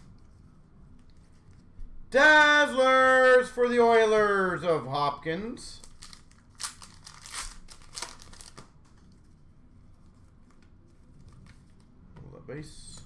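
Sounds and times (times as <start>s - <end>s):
plastic wrapper crinkling and tearing: 5.8s - 8.8s.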